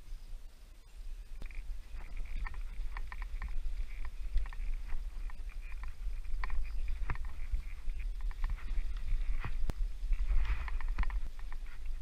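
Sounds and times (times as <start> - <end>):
steady low rumble: 0.0 - 12.0
climbing gear clicks and taps: 1.4 - 12.0.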